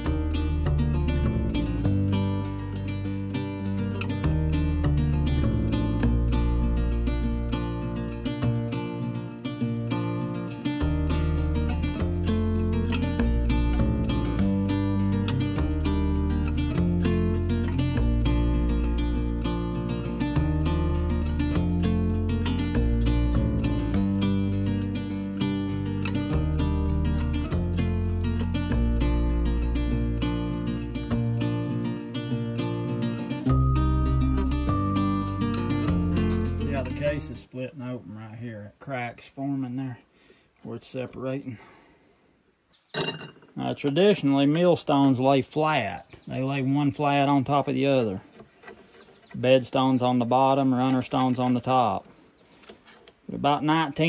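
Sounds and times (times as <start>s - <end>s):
pulsing bass line: 0.0s - 8.8s, 10.8s - 31.7s, 33.4s - 37.4s
plucked strings: 0.0s - 37.4s.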